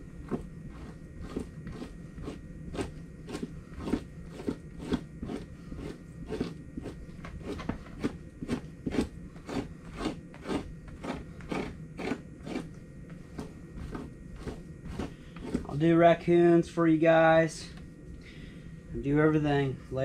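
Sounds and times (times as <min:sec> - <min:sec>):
knife scraping hide: 0:00.2 - 0:15.8.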